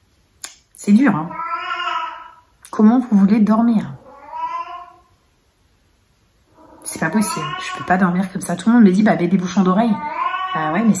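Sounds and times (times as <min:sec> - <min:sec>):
cat yowling: 0:01.3 - 0:02.4, 0:04.0 - 0:05.1, 0:06.5 - 0:08.2, 0:09.9 - 0:11.0.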